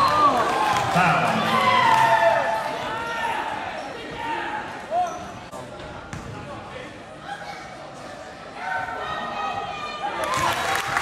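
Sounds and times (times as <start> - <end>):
crowd voices echoing: 0.0 - 5.2.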